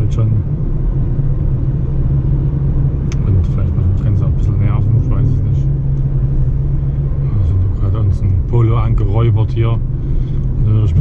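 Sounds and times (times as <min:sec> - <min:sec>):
road and engine rumble in car cabin: 0:00.0 - 0:11.0.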